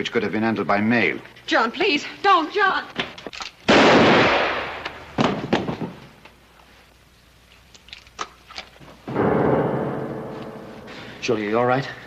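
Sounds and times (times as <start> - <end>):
loud ringing bang: 9.1 - 11.3.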